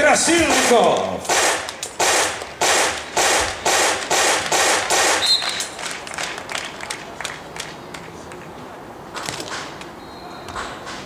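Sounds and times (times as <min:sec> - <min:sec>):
sharp rhythmic beats: 0:00.0 - 0:06.8
referee's whistle blast: 0:05.1 - 0:05.7.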